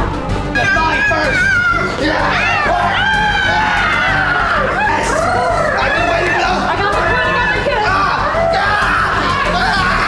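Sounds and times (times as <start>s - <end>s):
background music: 0.0s - 10.0s
people talking and shouting: 0.0s - 10.0s.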